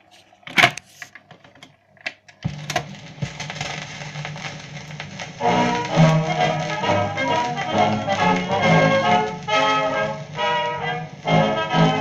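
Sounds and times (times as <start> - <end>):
record hiss and crackle: 0.0 - 12.0
record changer clicking and clunking: 0.5 - 3.8
band music from record: 2.4 - 12.0.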